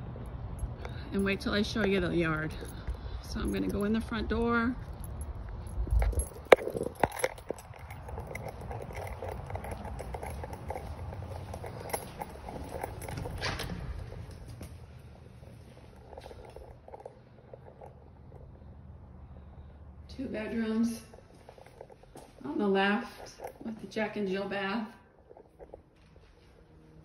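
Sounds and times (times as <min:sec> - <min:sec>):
keys rattling in a door lock: 0:00.6 - 0:18.4, 0:21.0 - 0:22.4, 0:23.0 - 0:23.8, 0:25.2 - 0:25.9
footsteps indoors: 0:00.8 - 0:18.2, 0:20.4 - 0:27.0
door opening rush: 0:07.4 - 0:14.6.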